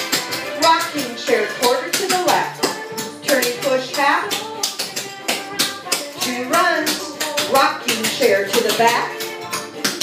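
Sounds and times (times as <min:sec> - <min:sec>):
music with singing: 0:00.0 - 0:10.0
tap shoes on hardwood floor: 0:00.0 - 0:10.0.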